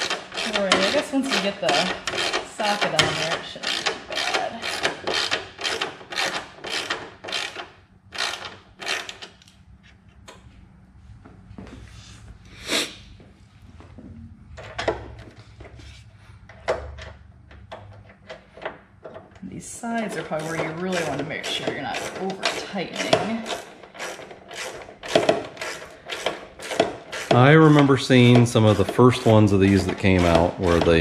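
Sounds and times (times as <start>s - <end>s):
socket ratchet clicking: 0.0s - 9.5s, 20.5s - 31.0s.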